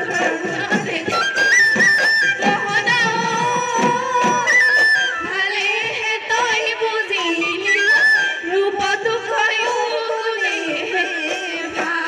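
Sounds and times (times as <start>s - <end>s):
drums beaten in quick rhythm: 0.0s - 12.0s.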